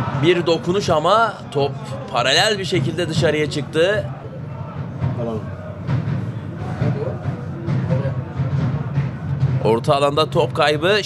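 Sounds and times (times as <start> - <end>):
low rumble of match crowd: 0.0 - 11.0.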